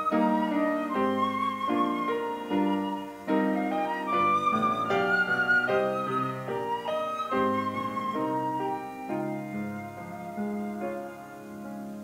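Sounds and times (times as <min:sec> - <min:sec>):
flute melody: 0:00.0 - 0:12.0
piano chords: 0:00.0 - 0:12.0.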